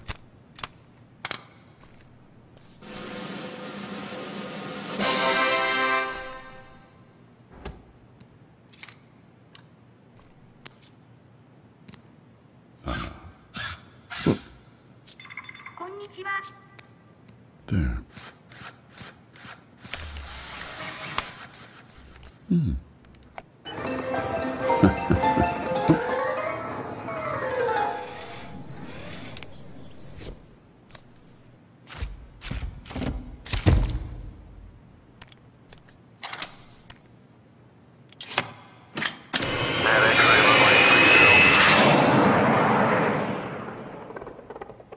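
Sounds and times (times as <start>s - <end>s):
loud rushing sound: 41.0s - 44.9s.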